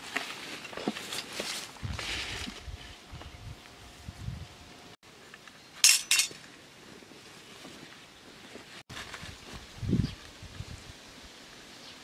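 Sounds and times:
metal spoons clinking: 5.8s - 6.4s.

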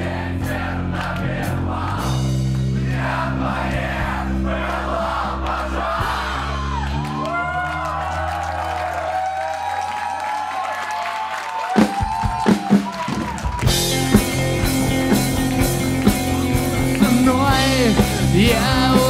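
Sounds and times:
live rock band: 0.0s - 7.6s, 11.7s - 19.0s
crowd cheering: 0.0s - 19.0s.

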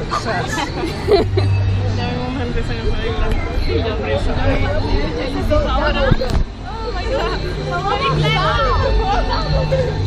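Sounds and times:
people chattering and calling out: 0.0s - 10.0s.

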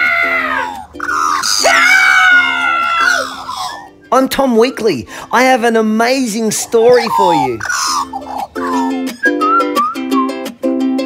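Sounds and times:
child screaming: 0.0s - 3.9s
plucked bouncy background music: 0.0s - 11.0s.

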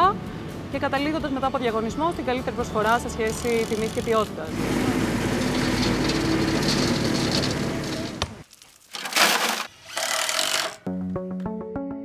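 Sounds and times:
cordless drill driving screw into metal: 9.0s - 10.9s.

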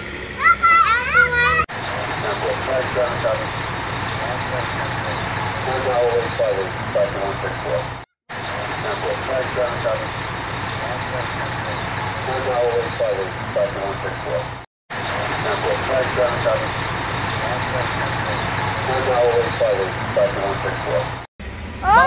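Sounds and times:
van engine running: 0.0s - 22.0s
faint voices: 1.2s - 21.2s.

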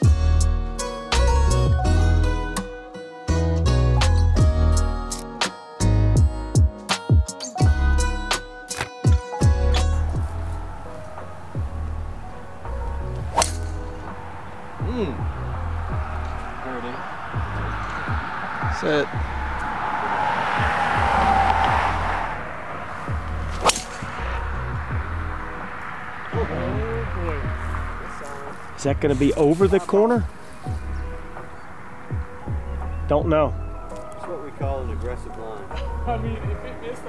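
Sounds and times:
background music with beat: 0.0s - 12.0s
golf club striking ball: 11.0s - 18.5s, 22.7s - 26.0s
whooshing swish: 13.1s - 29.5s.

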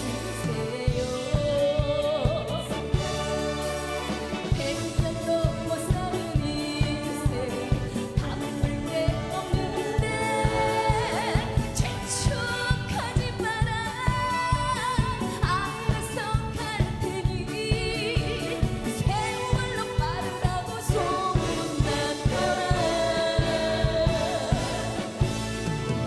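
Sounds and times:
backing singers: 0.0s - 15.4s, 17.8s - 25.8s
woman singing lead: 0.0s - 25.7s
band with brass: 0.0s - 26.0s
steady drum beat: 0.0s - 26.0s.

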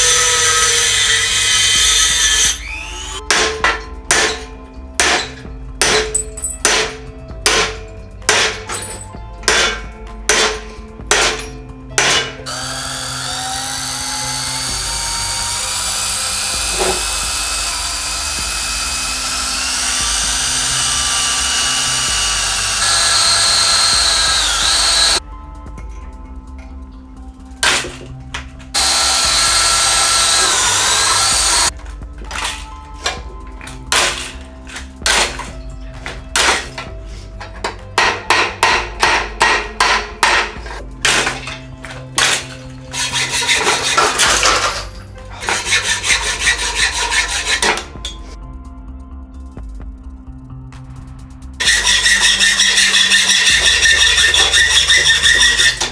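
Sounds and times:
electric drill boring through steel: 0.0s - 3.3s, 11.2s - 25.2s, 28.7s - 31.7s, 41.1s - 47.9s, 51.6s - 55.9s.

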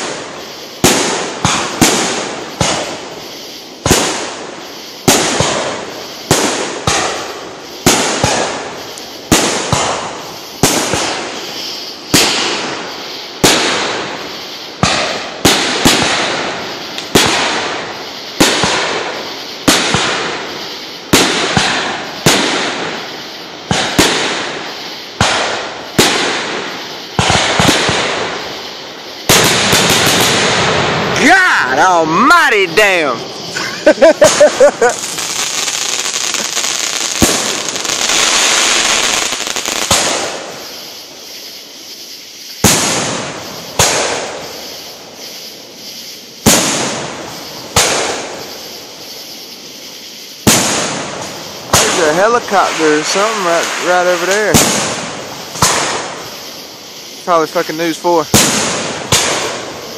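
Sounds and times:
firework shells bursting: 0.0s - 59.9s.

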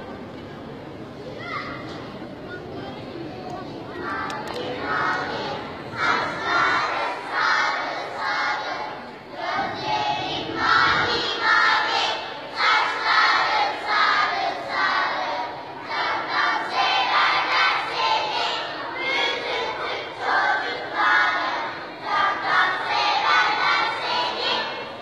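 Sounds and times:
children chanting together: 4.0s - 25.0s.

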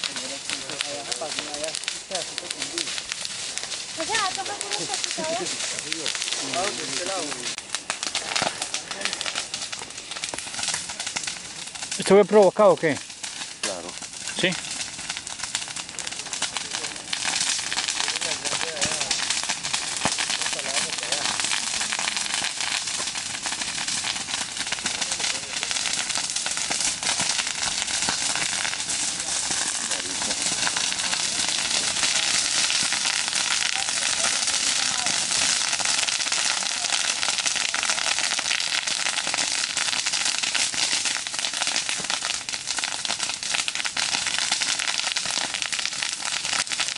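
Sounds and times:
wildfire crackling and popping: 0.0s - 46.9s.

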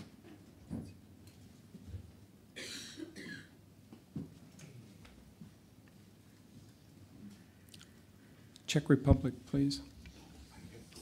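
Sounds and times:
faint cough: 2.6s - 3.6s.

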